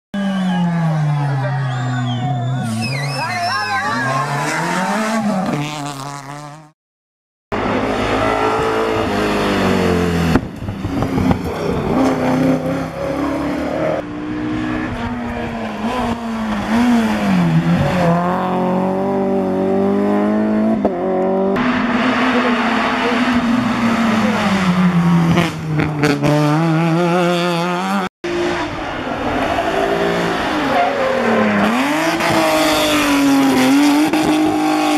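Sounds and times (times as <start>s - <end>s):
rally car engines revving: 0.2s - 6.7s, 7.5s - 34.9s.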